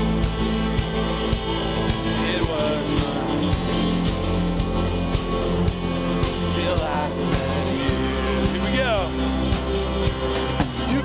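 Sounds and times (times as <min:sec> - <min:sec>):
worship band playing: 0:00.0 - 0:11.0
person singing melody: 0:01.6 - 0:04.8, 0:06.2 - 0:09.7.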